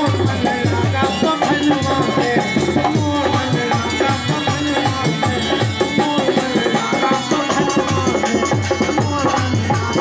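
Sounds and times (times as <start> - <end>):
dholak drum strokes: 0.0 - 10.0
hand percussion: 0.0 - 10.0
harmonium tones: 0.0 - 10.0.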